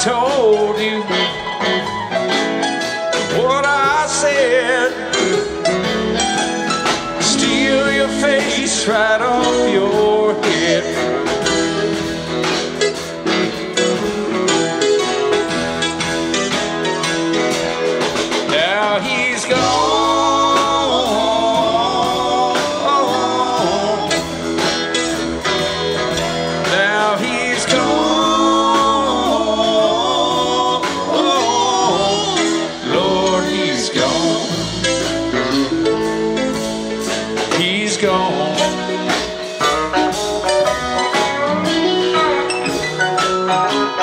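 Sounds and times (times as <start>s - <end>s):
electric guitar lead with bending notes: 0.0s - 44.0s
rock band playing: 0.0s - 44.0s.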